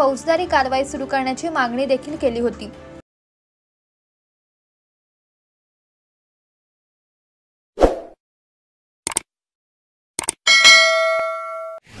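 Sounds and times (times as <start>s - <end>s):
quick clicks: 9.1s - 9.3s, 10.2s - 10.4s
bright bell ding: 10.5s - 11.8s.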